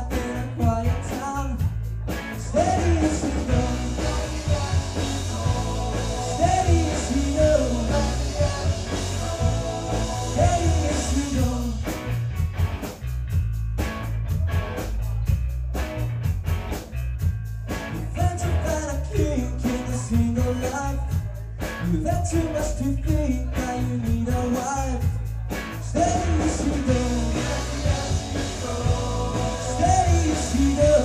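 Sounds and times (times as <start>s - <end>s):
live rock band playing: 0.0s - 31.0s
band chord stabs: 2.1s - 12.9s, 26.2s - 31.0s.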